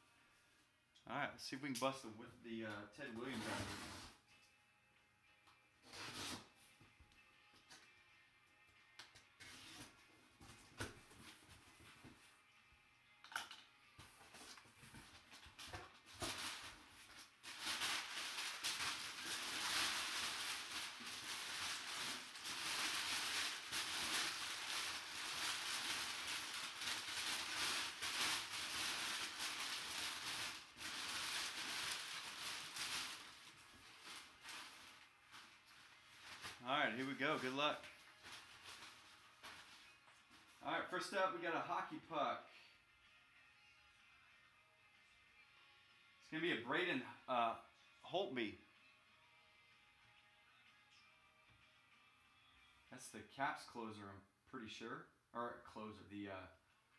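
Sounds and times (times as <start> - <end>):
packing paper rustling and crinkling: 14.2 - 40.6.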